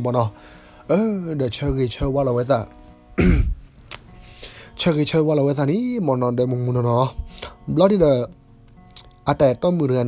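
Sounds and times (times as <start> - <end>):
soft background music: 0.0 - 10.0
man clearing his throat: 3.2 - 3.6.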